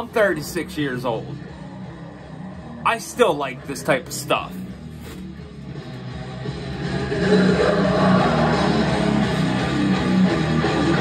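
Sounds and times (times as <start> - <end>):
death metal distorted guitar: 5.7 - 11.0.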